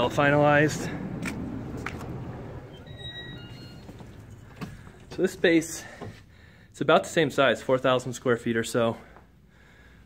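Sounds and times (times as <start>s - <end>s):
low background rumble: 0.0s - 6.6s
glass door opening: 1.7s - 6.2s
faint high-pitched squeaks: 2.6s - 5.3s.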